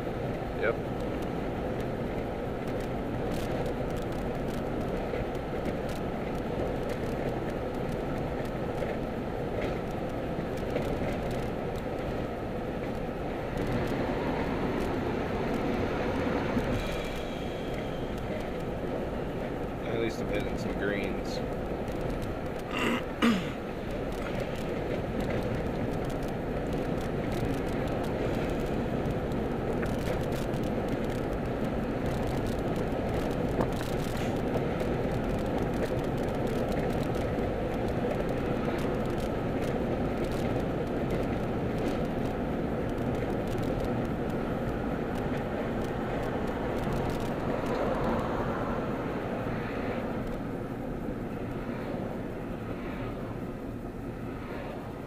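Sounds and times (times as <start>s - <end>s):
car cabin road noise: 0.0s - 55.0s.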